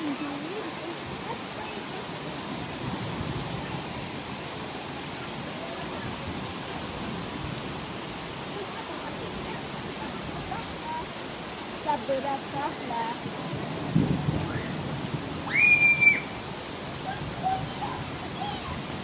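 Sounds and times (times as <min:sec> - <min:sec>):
heavy rain on leaves: 0:00.0 - 0:19.0
rushing mountain stream: 0:00.0 - 0:19.0.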